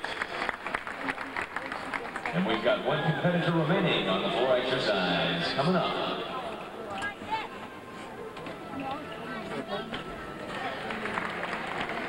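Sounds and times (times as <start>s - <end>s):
background music: 2.2s - 12.0s.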